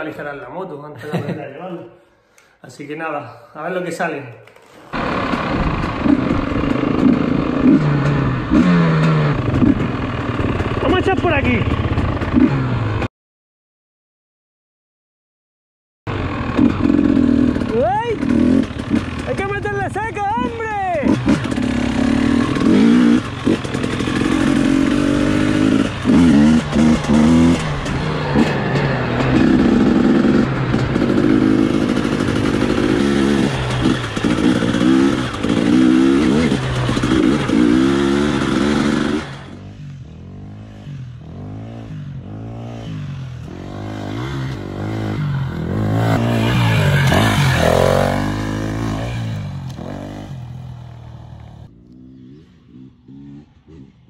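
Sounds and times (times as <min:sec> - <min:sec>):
dirt bike engine revving: 0:04.9 - 0:13.1, 0:16.1 - 0:54.0.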